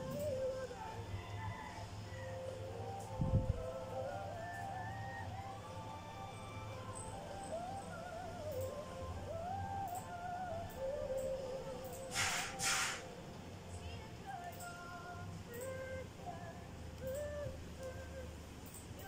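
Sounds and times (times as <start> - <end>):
woman singing: 0.0 - 12.2, 13.7 - 19.0
soft backing music: 0.0 - 19.0
short bursts of hiss: 12.0 - 13.2.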